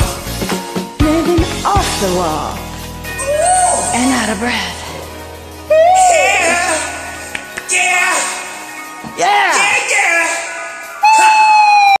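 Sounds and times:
person shouting: 0:03.2 - 0:04.0, 0:05.7 - 0:08.4.

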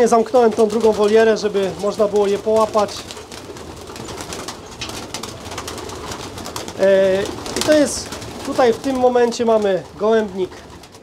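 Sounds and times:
pigeons flapping wings: 0:00.0 - 0:11.0.

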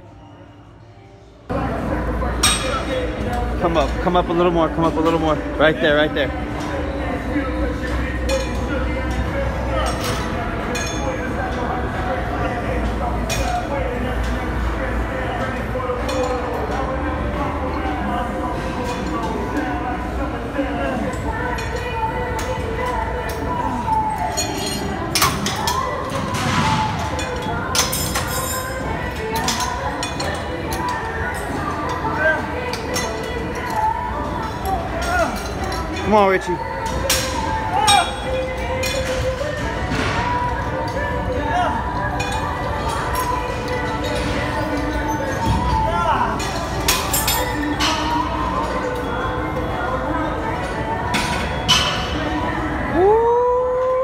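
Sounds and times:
background music: 0:00.0 - 0:54.0.

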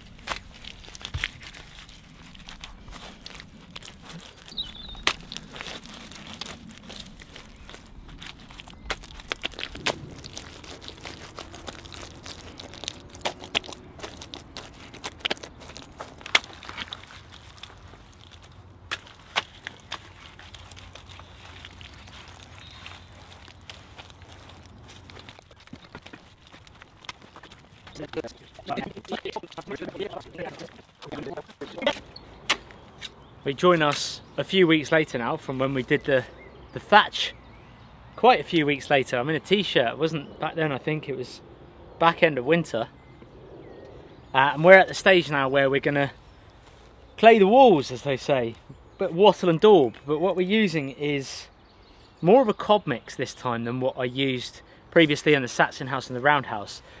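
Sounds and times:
wet clay squelching: 0:00.0 - 0:33.2.

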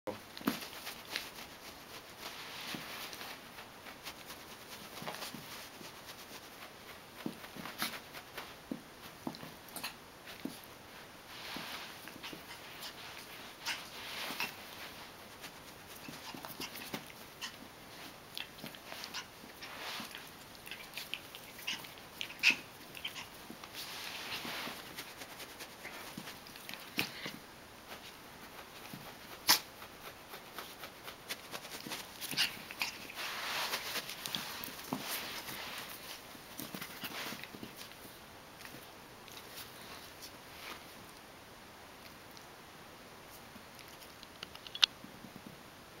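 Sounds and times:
puppy paws scrambling on carpet: 0:00.2 - 0:41.2
light scuffles: 0:10.3 - 0:17.1, 0:23.2 - 0:27.4, 0:28.0 - 0:38.1
puppy high-pitched vocal sounds: 0:18.3 - 0:23.6.

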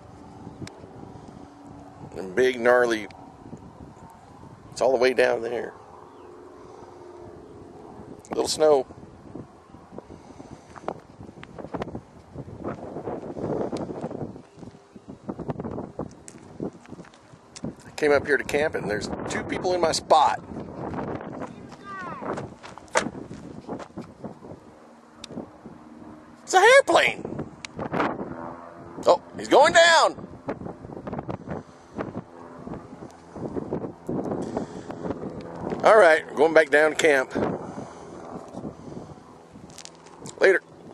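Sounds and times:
wind buffeting microphone: 0:00.0 - 0:40.9.

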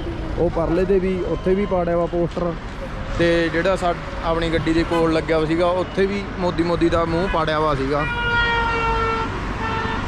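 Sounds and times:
road traffic rumble: 0:00.0 - 0:10.0
vehicle horn honking: 0:07.2 - 0:10.0.

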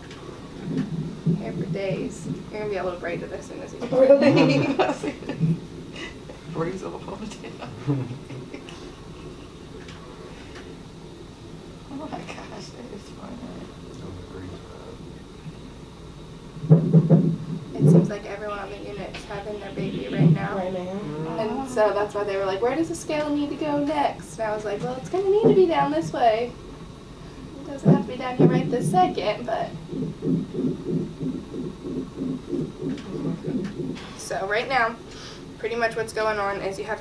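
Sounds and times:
fetal heartbeat whooshing pulses: 0:00.0 - 0:05.9, 0:16.5 - 0:26.5, 0:27.5 - 0:35.0
low room hum: 0:00.0 - 0:37.0.

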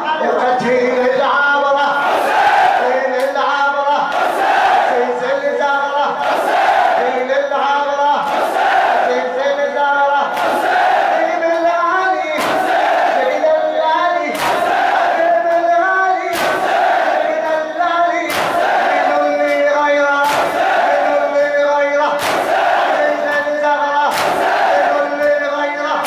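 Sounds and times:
crowd of men chanting: 0:00.3 - 0:26.0
hands beating on chests: 0:12.4 - 0:12.9, 0:14.3 - 0:14.9, 0:16.3 - 0:16.9, 0:18.3 - 0:19.6, 0:20.2 - 0:21.0, 0:22.2 - 0:23.5, 0:24.1 - 0:25.4.

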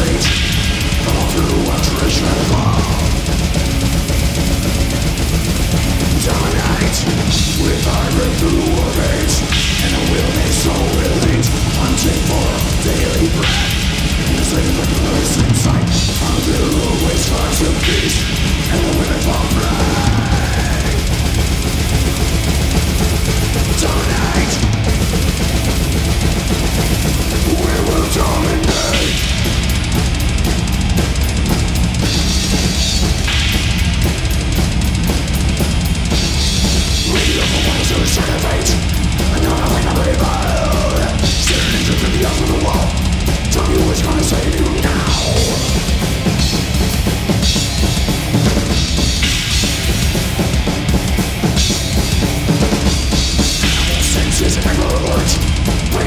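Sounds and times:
crash and ride cymbals: 0:00.0 - 0:56.0
death metal band playing live: 0:00.0 - 0:56.0
distorted electric guitars: 0:00.0 - 0:56.0
drum kit pounding rapidly: 0:00.0 - 0:56.0.

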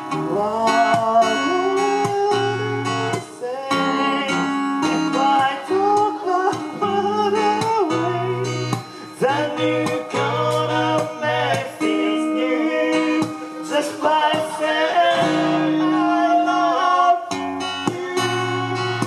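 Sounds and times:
man singing slow melody: 0:00.0 - 0:19.0
plucked acoustic guitar: 0:00.0 - 0:19.0.

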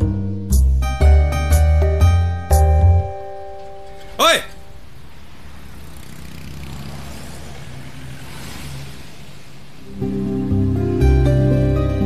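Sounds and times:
car engine humming: 0:02.0 - 0:12.0.

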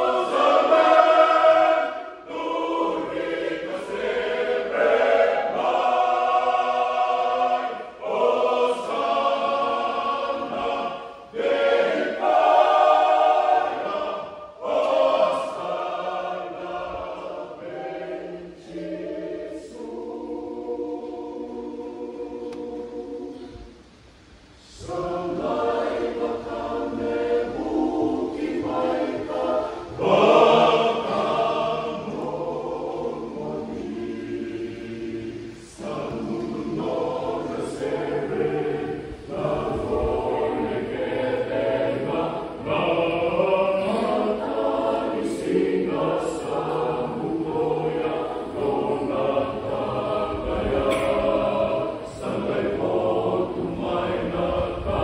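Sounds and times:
mixed choir singing in harmony: 0:00.0 - 0:55.0.

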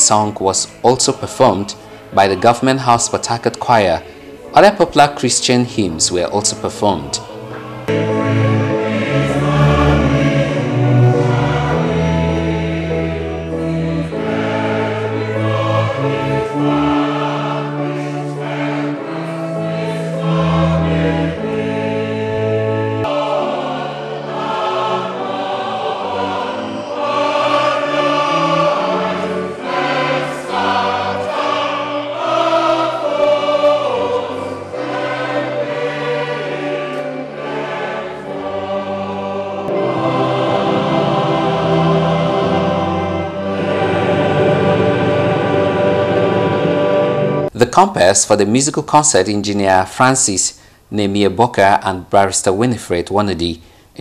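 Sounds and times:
choir singing a hymn: 0:00.0 - 0:47.6
keyboard accompaniment: 0:00.0 - 0:50.4.

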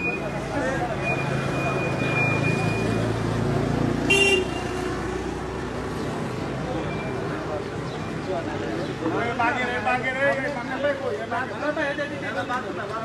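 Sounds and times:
vehicle horn beep: 0:04.1 - 0:04.8.

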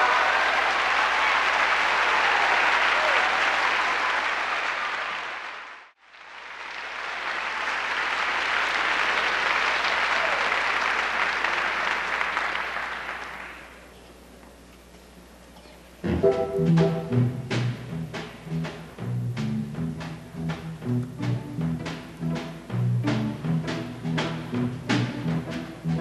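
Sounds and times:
audience applauding: 0:00.0 - 0:13.9.

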